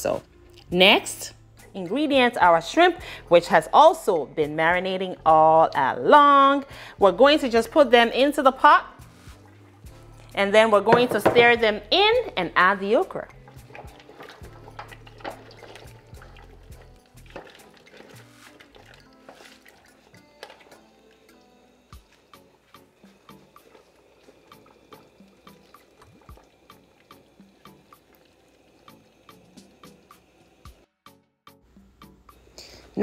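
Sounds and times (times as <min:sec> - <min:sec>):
soft background music: 0:00.0 - 0:33.0
thick liquid pouring: 0:09.0 - 0:10.4, 0:13.3 - 0:30.8
clicks and drips: 0:13.3 - 0:21.5, 0:23.1 - 0:30.3
spoon stirring soup: 0:13.3 - 0:28.2.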